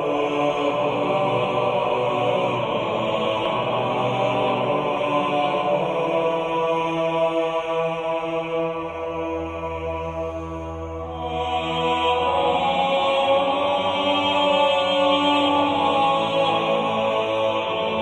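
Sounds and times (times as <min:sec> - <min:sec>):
chant-like voices holding chords: 0:00.0 - 0:18.0.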